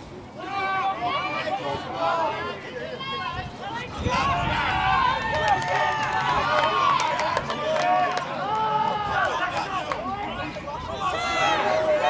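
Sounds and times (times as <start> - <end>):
voices shouting and calling: 0.2 - 12.0.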